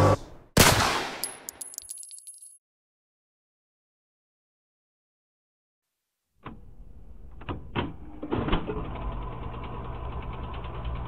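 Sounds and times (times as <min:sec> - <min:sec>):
gunshot with reverberant tail: 0:00.6 - 0:01.3
high metallic clinks: 0:01.2 - 0:02.6.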